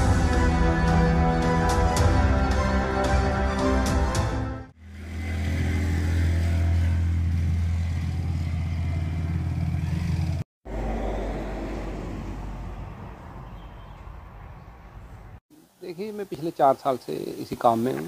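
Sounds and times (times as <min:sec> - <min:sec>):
engine humming: 0:04.8 - 0:15.4.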